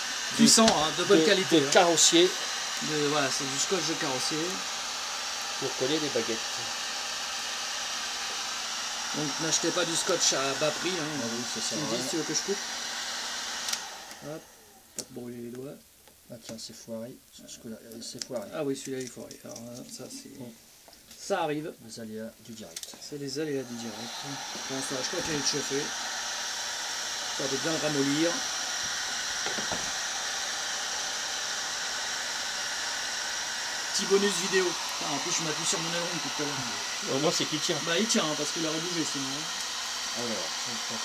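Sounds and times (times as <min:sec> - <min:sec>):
heat gun blowing: 0:00.0 - 0:15.0, 0:22.8 - 0:41.0.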